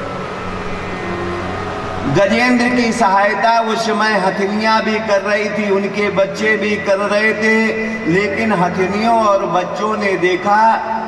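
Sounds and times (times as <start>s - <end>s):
background hiss: 0.0s - 11.0s
low even hum: 0.0s - 11.0s.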